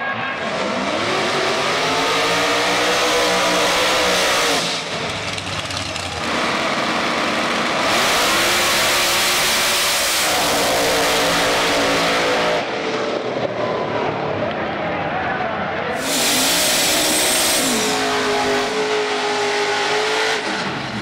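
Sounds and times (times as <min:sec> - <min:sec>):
drag race cars accelerating: 0:00.0 - 0:21.0.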